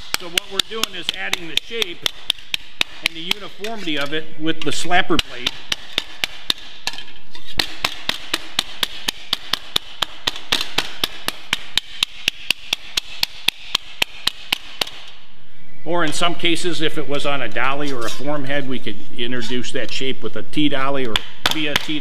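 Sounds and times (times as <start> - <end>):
wooden slapper striking sheet metal: 0.0 - 15.2, 21.0 - 22.0.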